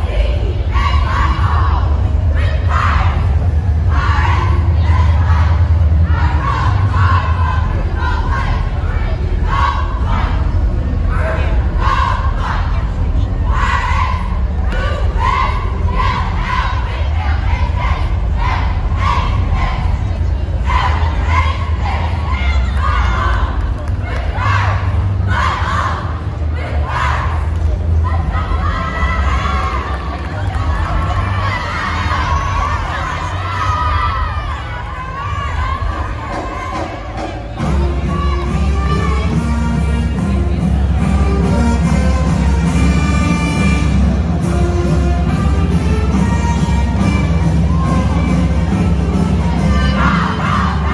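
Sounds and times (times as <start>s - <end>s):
cheerleaders shouting in unison: 0.0s - 40.2s, 46.1s - 50.9s
steady low rumble: 0.0s - 50.9s.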